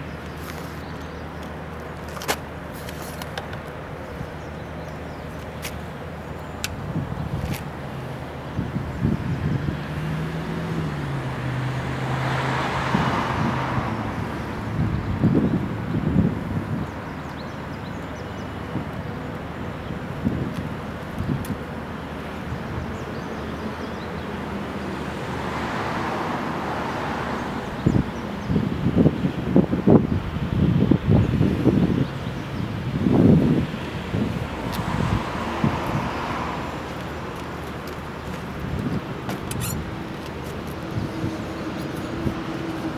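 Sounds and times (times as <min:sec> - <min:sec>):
cars passing: 0:00.0 - 0:42.9
wind buffeting microphone: 0:06.2 - 0:24.7, 0:25.4 - 0:42.9.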